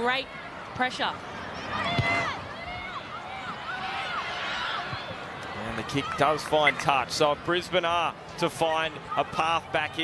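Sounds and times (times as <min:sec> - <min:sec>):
stadium noise: 0:00.0 - 0:10.0.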